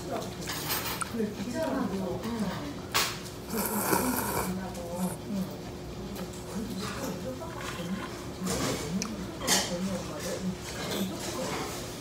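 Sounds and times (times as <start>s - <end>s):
person slurping noodles: 3.5s - 5.2s.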